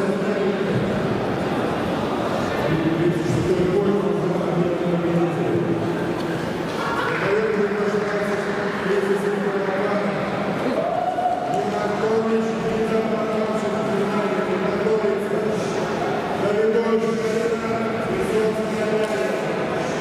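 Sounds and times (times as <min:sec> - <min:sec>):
man speaking over public address: 0:00.0 - 0:01.3, 0:02.0 - 0:06.1, 0:06.8 - 0:20.0.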